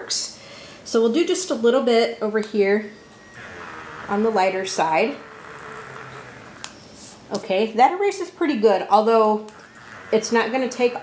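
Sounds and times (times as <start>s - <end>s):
electric eraser whirring: 3.0s - 7.1s, 9.5s - 11.0s.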